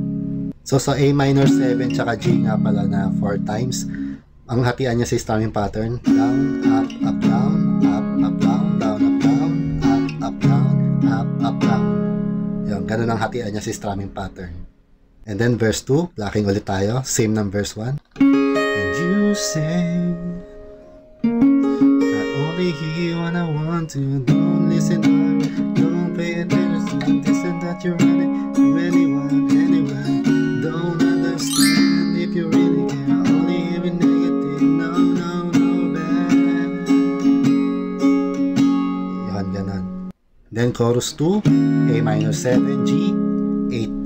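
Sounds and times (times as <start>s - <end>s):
acoustic guitar chords: 0.0s - 4.3s, 6.1s - 12.8s, 18.2s - 40.1s.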